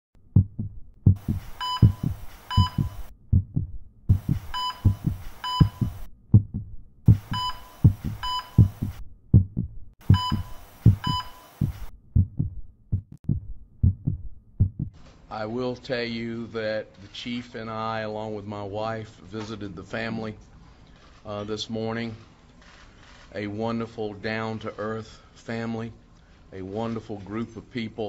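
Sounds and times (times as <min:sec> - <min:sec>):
heartbeat thudding: 0:00.2 - 0:15.0
heart monitor beeping: 0:00.4 - 0:14.9
bursts of hiss: 0:01.2 - 0:03.1, 0:04.1 - 0:06.1, 0:10.0 - 0:11.9.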